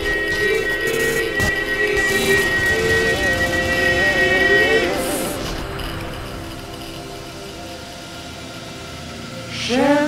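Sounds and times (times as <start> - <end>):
electronic drone: 0.0 - 10.0.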